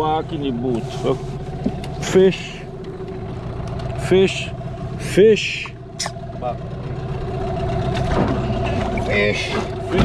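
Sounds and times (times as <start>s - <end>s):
outboard motor idling: 0.0s - 10.0s.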